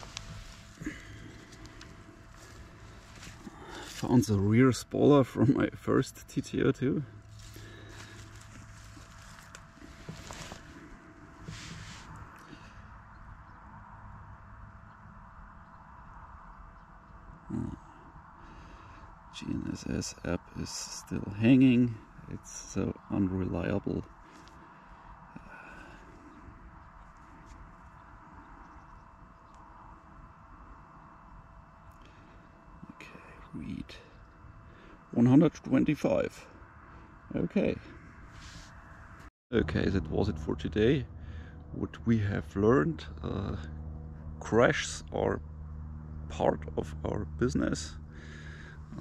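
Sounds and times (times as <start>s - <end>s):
footsteps in long grass: 0.0s - 4.2s, 7.3s - 12.4s
thin steady hum: 0.0s - 49.0s.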